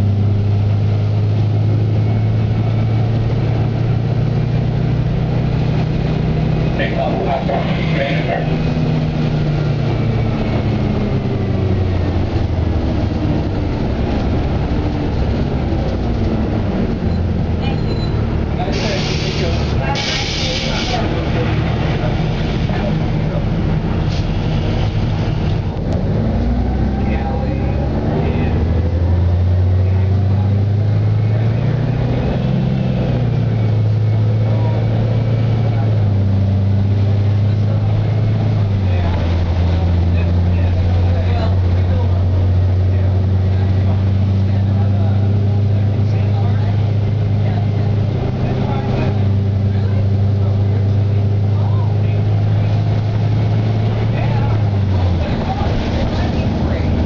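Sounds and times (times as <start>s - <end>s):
bus engine drone: 0.0s - 57.0s.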